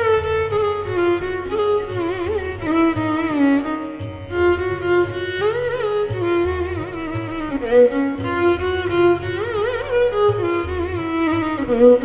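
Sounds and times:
violin playing slow melody: 0.0 - 12.0.

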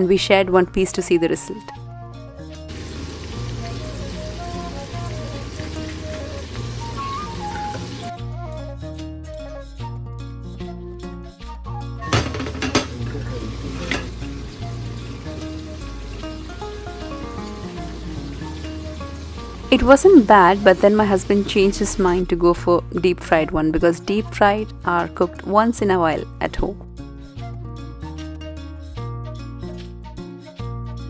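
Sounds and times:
background music with bass line: 1.5 - 31.0
food frying in oil: 2.7 - 8.2, 12.3 - 22.4
cutlery clinking on a plate: 12.1 - 13.0, 13.8 - 14.2.

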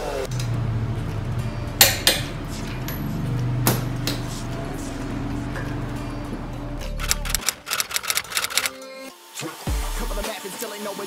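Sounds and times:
faint background music: 0.0 - 11.0
typewriter key clicks: 7.0 - 8.8.

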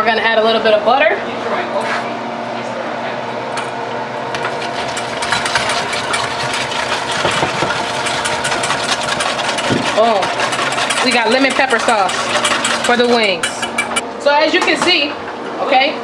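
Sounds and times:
whisk clicking against metal bowl: 4.4 - 14.0.

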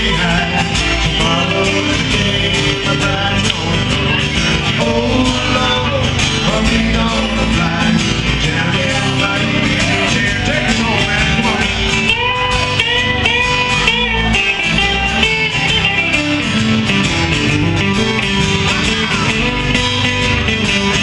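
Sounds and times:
electric bass: 0.0 - 21.0
electric guitar lead with bent notes: 0.0 - 21.0
strummed acoustic guitar: 0.0 - 21.0.

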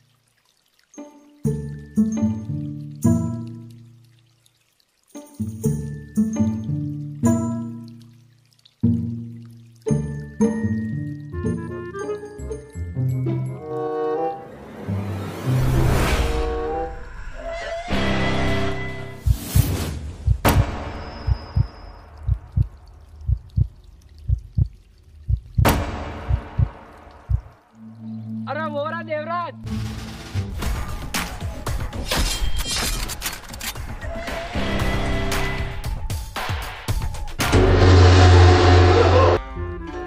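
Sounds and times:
heartbeat thumps: 19.2 - 27.6
short orchestral hits: 37.5 - 39.4
sustained bass-heavy blast: 37.5 - 39.4.

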